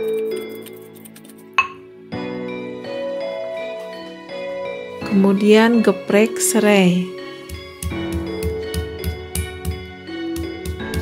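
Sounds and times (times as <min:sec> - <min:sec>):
instrumental music with steady beat: 0:07.1 - 0:11.0.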